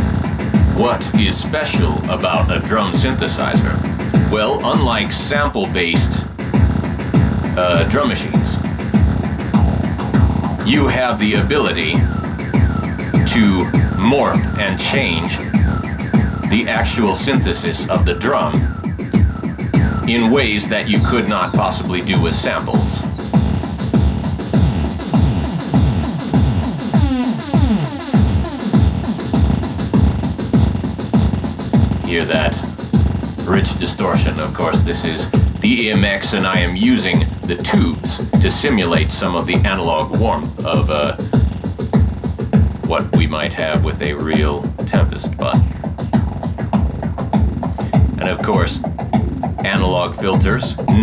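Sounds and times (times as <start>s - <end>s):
distorted electronic drum loop: 0.0s - 51.0s.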